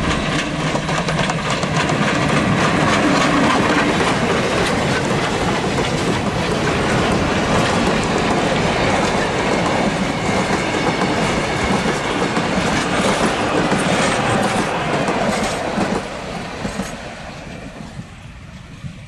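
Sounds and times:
train wheels running over rails: 0.0s - 19.0s.

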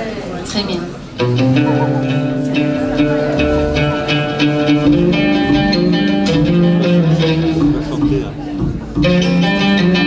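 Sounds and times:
plucked string melody: 1.2s - 10.0s
held low notes: 1.4s - 3.9s.

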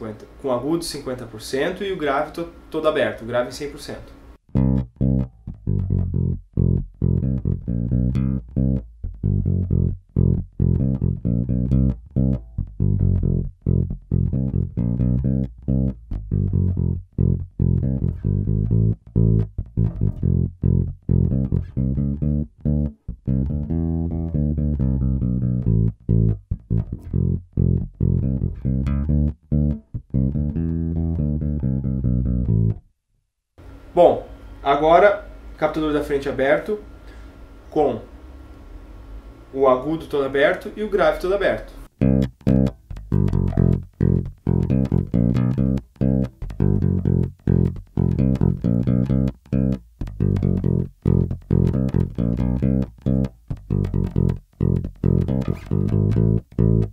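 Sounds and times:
electric bass line: 4.5s - 32.9s, 37.0s - 56.9s.

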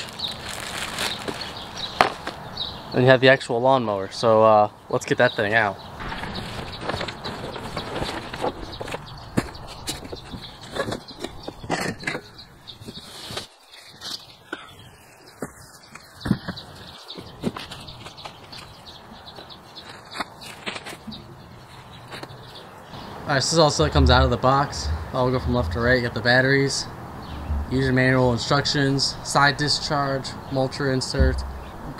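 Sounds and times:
cardboard and plastic rustling: 0.0s - 2.4s, 6.0s - 14.3s
knocks and thumps: 6.0s - 12.3s, 23.8s - 26.0s, 27.2s - 27.9s, 31.2s - 31.9s.

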